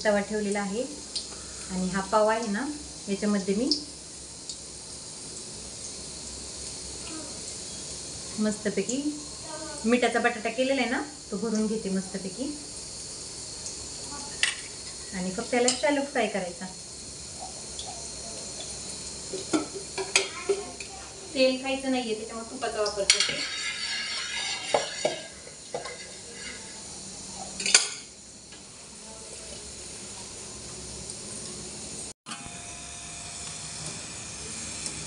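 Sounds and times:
woman's voice: 0:00.0 - 0:01.0, 0:01.7 - 0:03.8, 0:08.4 - 0:12.6, 0:15.1 - 0:16.8, 0:21.3 - 0:23.4
batter frying in hot oil: 0:00.0 - 0:35.0.

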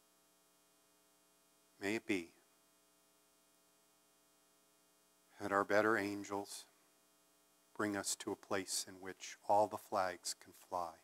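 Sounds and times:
electrical mains hum: 0:00.0 - 0:11.0
man speaking: 0:01.8 - 0:02.4, 0:05.4 - 0:06.7, 0:07.8 - 0:11.0.

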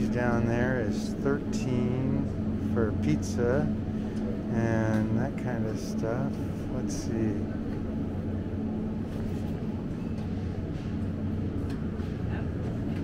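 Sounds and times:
refrigerated cases humming: 0:00.0 - 0:13.0.

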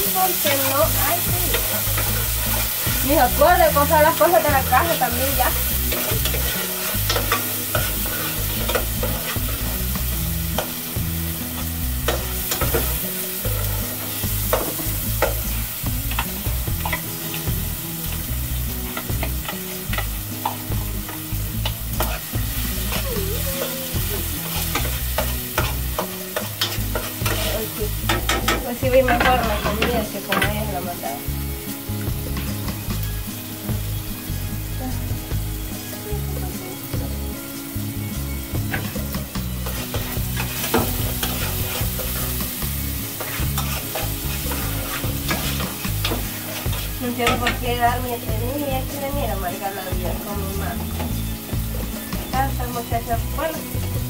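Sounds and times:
food sizzling: 0:00.0 - 0:54.0
metal spoon scraping a pot: 0:05.7 - 0:09.7, 0:21.1 - 0:23.0, 0:24.4 - 0:30.5, 0:39.6 - 0:42.4, 0:43.2 - 0:47.6.

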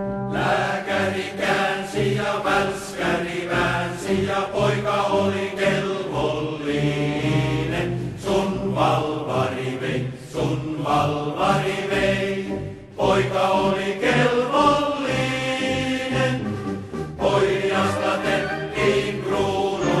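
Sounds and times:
choir singing marching song: 0:00.3 - 0:20.0.

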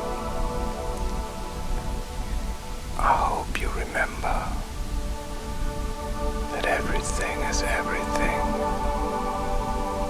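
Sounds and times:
ambient music: 0:00.0 - 0:10.0
person whispering: 0:03.0 - 0:04.7, 0:06.5 - 0:08.5.

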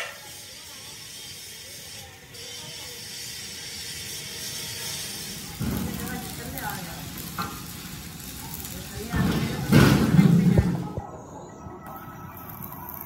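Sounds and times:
arc welding crackle: 0:00.0 - 0:11.0, 0:11.8 - 0:13.0.

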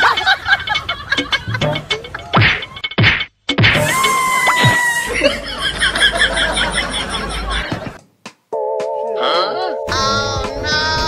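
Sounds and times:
slapstick whack sound effects: 0:02.4 - 0:04.0.

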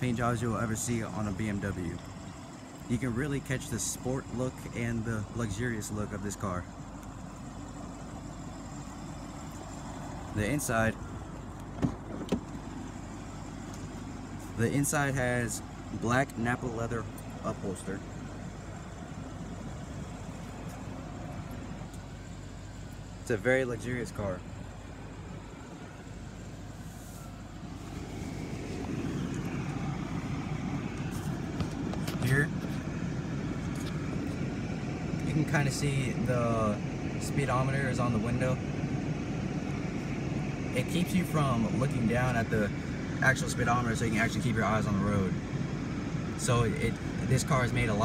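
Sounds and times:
car engine idling: 0:00.0 - 0:48.0
outdoor background noise: 0:00.0 - 0:48.0.

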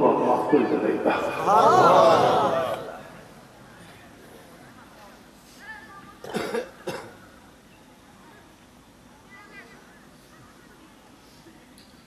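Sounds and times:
man coughing: 0:06.2 - 0:07.2.

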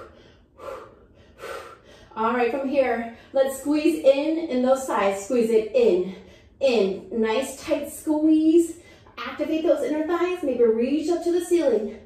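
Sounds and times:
woman breathing hard: 0:00.0 - 0:02.2.

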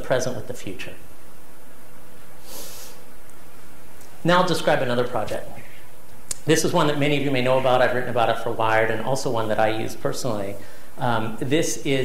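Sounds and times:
room noise: 0:00.0 - 0:12.0
nose sniff: 0:02.4 - 0:03.1.

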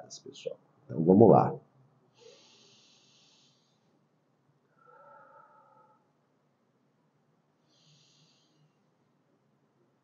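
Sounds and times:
man breathing faintly: 0:02.1 - 0:04.1, 0:07.6 - 0:09.1.

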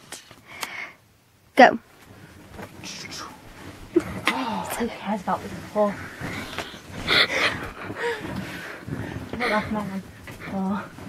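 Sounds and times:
faint breathing: 0:00.4 - 0:01.1, 0:02.1 - 0:11.0
person gasping breaths: 0:06.0 - 0:09.7.

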